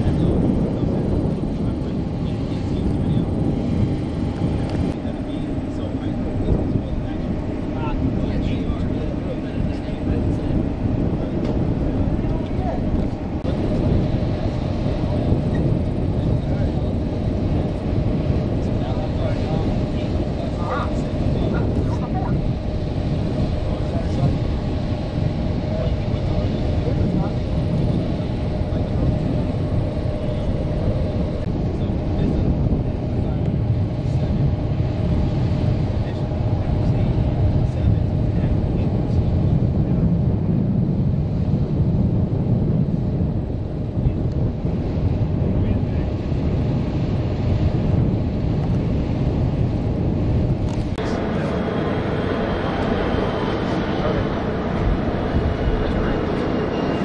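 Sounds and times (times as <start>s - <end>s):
low mechanical rumble: 0.0s - 57.0s.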